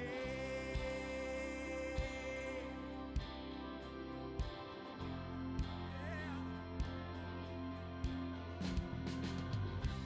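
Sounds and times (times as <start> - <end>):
guitar and keyboard chords: 0.0 - 10.0.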